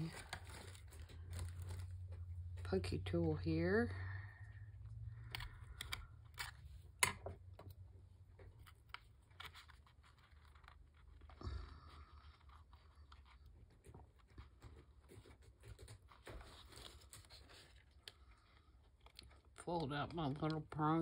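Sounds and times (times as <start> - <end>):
paper rustle and scrape: 0.0 - 2.3, 12.2 - 18.1
low steady hum: 0.0 - 21.0.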